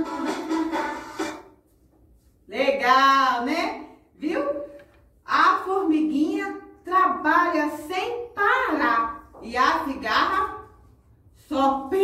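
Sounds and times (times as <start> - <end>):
children's song with instrumental backing: 0.0 - 1.7.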